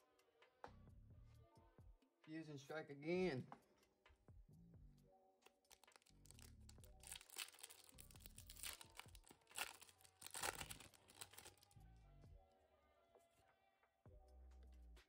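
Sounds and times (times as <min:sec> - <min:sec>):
faint background music: 0:00.0 - 0:15.0
foil wrapper crinkling and tearing: 0:05.5 - 0:11.8.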